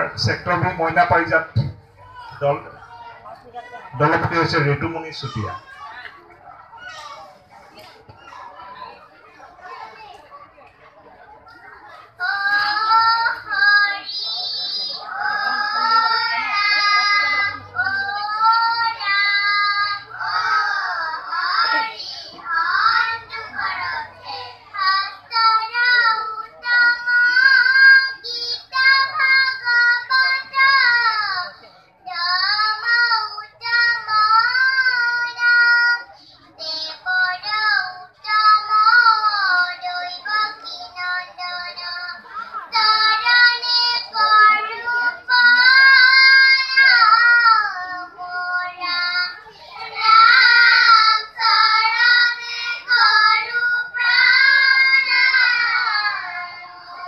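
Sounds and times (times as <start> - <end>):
children singing: 12.2 - 57.0.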